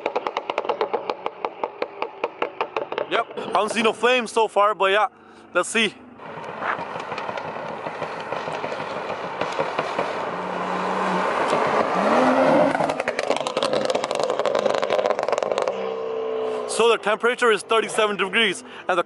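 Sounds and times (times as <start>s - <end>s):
exhaust crackles and pops: 0.0s - 4.2s, 6.2s - 15.9s
car engine approaching at speed: 0.0s - 19.0s.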